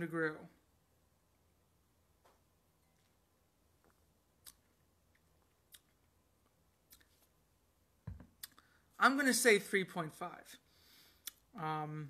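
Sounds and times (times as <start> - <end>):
mouth clicks and smacks: 3.9 - 6.2, 6.8 - 7.3, 8.3 - 8.7, 11.2 - 11.5
soft low thump: 8.0 - 8.3.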